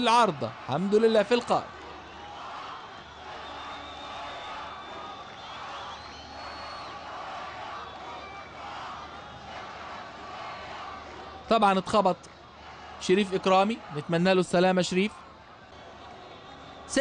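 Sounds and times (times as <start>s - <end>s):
stadium crowd voices: 0.0s - 17.0s.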